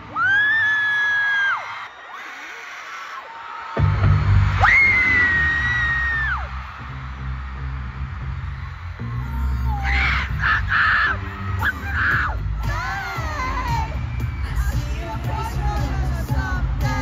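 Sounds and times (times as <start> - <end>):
crowd screaming: 0.0 - 17.0
loud dance music with bass beat: 3.8 - 17.0.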